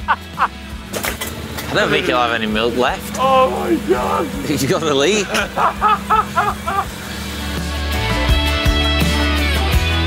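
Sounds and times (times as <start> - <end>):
man laughing: 0.0 - 0.6, 3.5 - 7.0
music with steady bass line: 0.0 - 0.9, 5.2 - 10.0.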